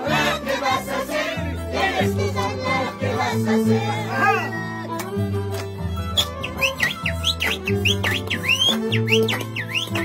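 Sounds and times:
shrill swooping whistles: 0:06.2 - 0:10.0.

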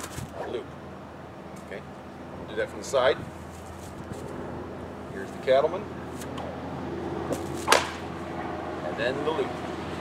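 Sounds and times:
bullwhip crack: 0:07.3 - 0:08.1.

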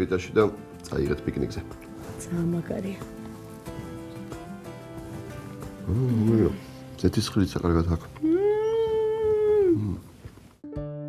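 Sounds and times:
plucked acoustic guitar music: 0:00.0 - 0:09.5, 0:10.6 - 0:11.0
woman humming: 0:08.2 - 0:10.1.

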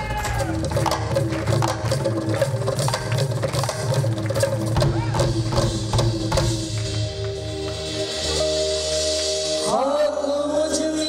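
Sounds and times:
hand drum and percussion strokes: 0:00.0 - 0:09.6
person singing: 0:09.5 - 0:11.0.

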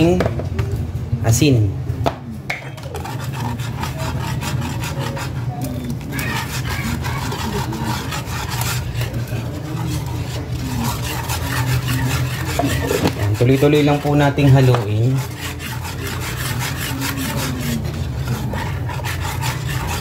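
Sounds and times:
whisk scraping metal pan: 0:02.7 - 0:20.0.

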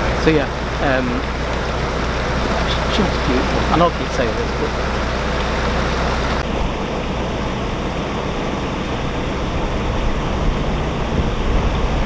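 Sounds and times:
boat engine idling: 0:00.0 - 0:12.0
water rushing: 0:00.0 - 0:12.0.

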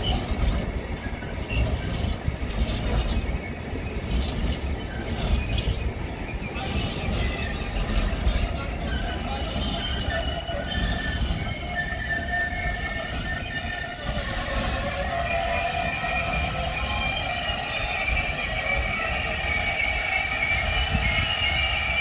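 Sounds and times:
high steady wheel squeal: 0:00.0 - 0:22.0
train wheels rumbling on rail: 0:00.0 - 0:22.0.

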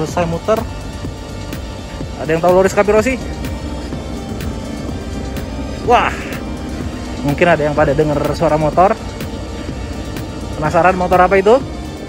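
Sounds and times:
background music: 0:00.0 - 0:12.0
motorcycle engine running: 0:00.0 - 0:12.0.

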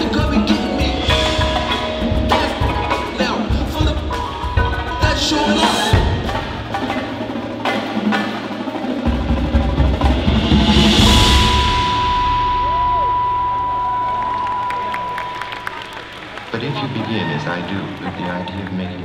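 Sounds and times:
percussion ensemble drumming: 0:00.0 - 0:17.3
cymbal swell: 0:10.1 - 0:16.6
high electronic tone: 0:10.9 - 0:16.4.

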